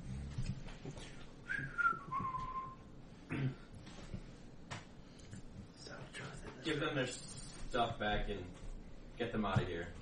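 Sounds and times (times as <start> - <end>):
person whistling: 1.5 - 2.8.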